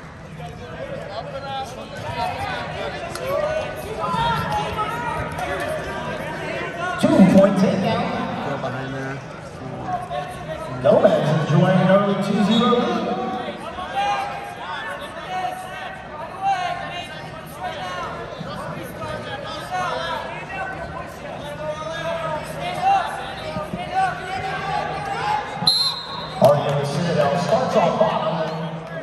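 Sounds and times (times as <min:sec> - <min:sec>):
short high whistle: 0:25.6 - 0:26.4.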